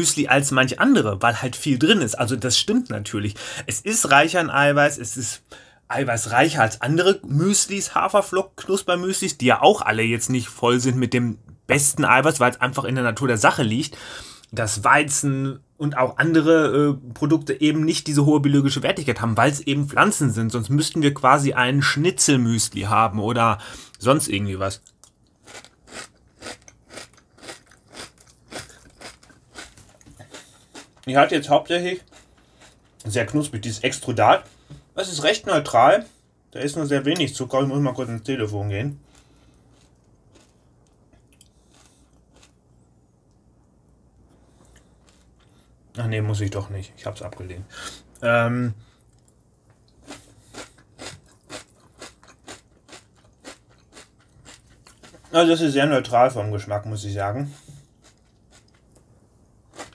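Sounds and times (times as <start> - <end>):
person chewing crunchy cereal: 24.8 - 31.1, 32.0 - 33.0, 39.0 - 42.7, 44.4 - 45.7, 48.8 - 55.4, 57.6 - 59.9.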